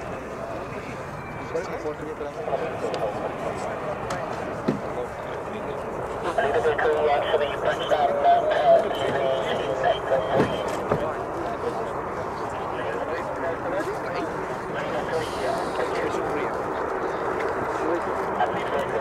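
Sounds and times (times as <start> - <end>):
indistinct chatter of people: 0.0 - 19.0.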